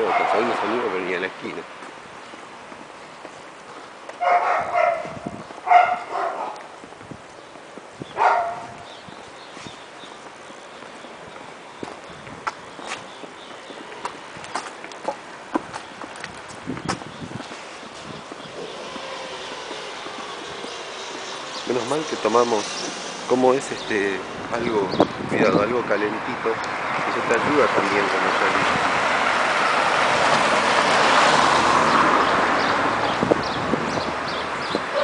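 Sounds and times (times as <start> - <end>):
dog barking: 0.0 - 0.5, 4.2 - 6.7, 8.2 - 8.8
low street noise: 0.0 - 35.0.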